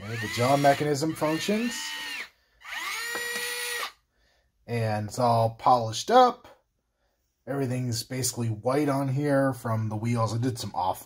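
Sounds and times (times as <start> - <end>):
electric motor and gear whine: 0.0 - 3.9.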